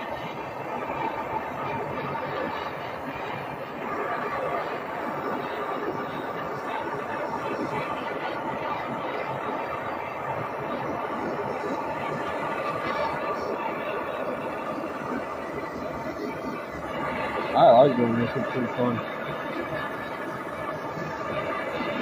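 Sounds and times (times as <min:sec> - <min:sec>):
torch flame rushing: 0:00.0 - 0:22.0.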